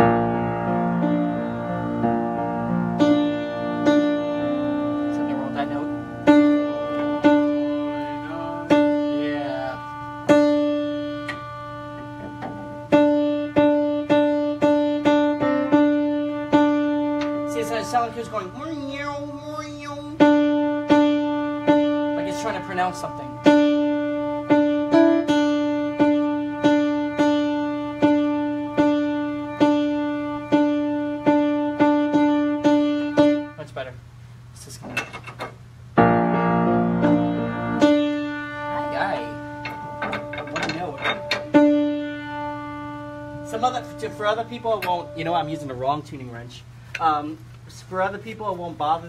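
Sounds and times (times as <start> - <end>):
piano key struck repeatedly: 0.0 - 33.6, 34.9 - 46.0
piano chord: 0.0 - 33.8, 36.0 - 46.5.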